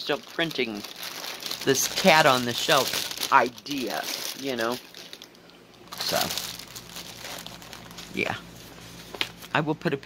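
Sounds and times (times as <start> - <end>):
plastic packaging crinkling: 0.0 - 9.5.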